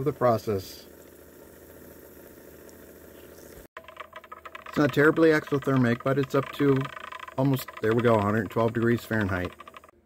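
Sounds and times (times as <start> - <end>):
stir plate humming: 0.0 - 10.0.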